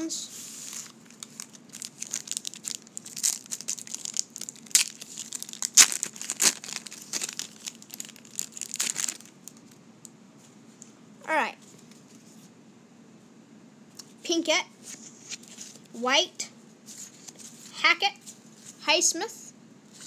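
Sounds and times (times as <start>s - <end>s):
wrapper being torn and crinkled: 0.6s - 9.8s.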